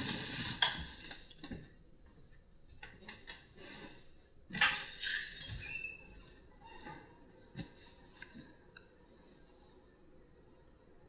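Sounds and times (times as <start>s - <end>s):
door hinge squeaking: 4.6s - 6.9s.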